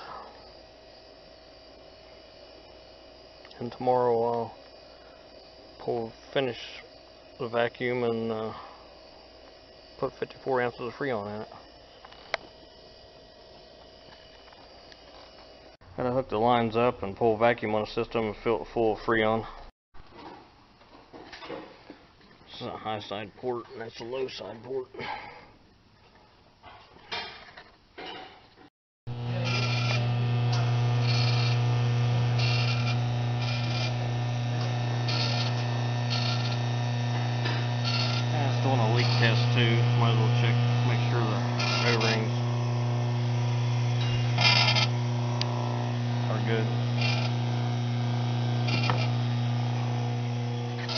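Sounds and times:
vacuum pump electric hum: 0:00.0 - 0:19.7, 0:29.1 - 0:50.9.

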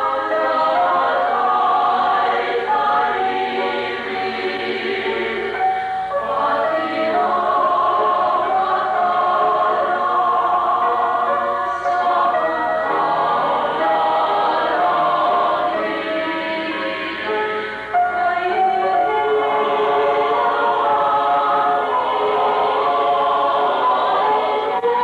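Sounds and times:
mixed choir singing: 0:00.0 - 0:25.0.

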